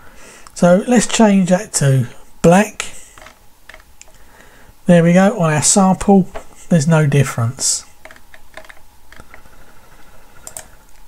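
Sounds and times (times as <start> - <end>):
low room noise: 0.0 - 11.0
computer mouse clicks: 8.0 - 9.5, 10.4 - 10.8.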